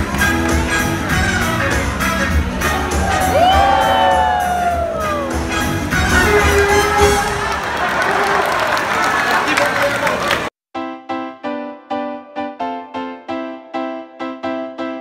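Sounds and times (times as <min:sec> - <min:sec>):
upbeat show music: 0:00.0 - 0:08.0
crowd cheering and shouting: 0:02.1 - 0:10.5
long whoops: 0:03.1 - 0:05.4.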